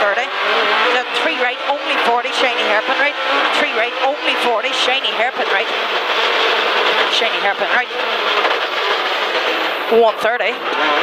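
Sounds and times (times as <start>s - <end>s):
rally car engine at speed: 0.0s - 11.0s.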